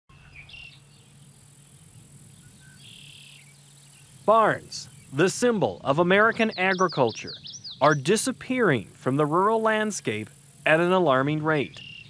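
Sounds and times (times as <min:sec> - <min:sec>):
crickets and insects chirring: 0:00.2 - 0:12.0
short bird chirps: 0:06.5 - 0:08.1, 0:11.7 - 0:12.0.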